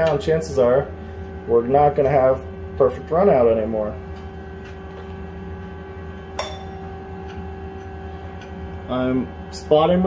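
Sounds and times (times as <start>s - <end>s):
lathe machine hum: 0.0s - 10.0s
sharp metallic clink: 6.4s - 6.8s.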